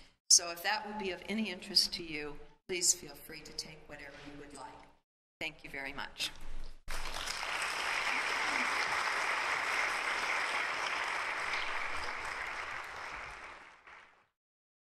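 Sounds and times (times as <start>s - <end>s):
congregation applauding: 6.9s - 14.3s.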